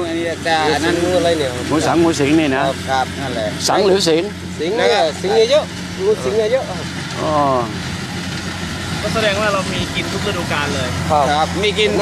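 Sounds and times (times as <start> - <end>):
idling engine hum: 0.0 - 12.0
voices talking: 0.0 - 12.0.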